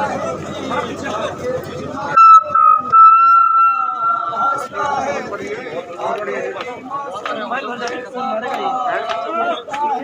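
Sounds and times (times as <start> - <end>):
high-pitched whistling tone: 2.2 - 4.7.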